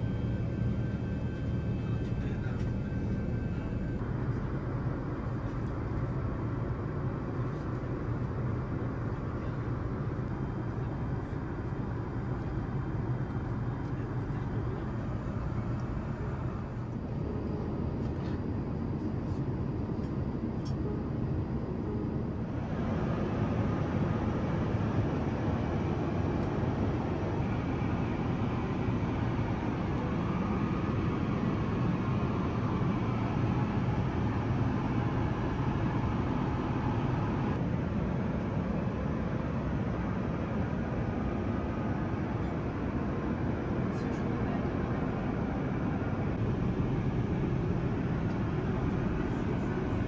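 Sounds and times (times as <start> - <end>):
airplane cabin airflow and engines: 0.0 - 50.0.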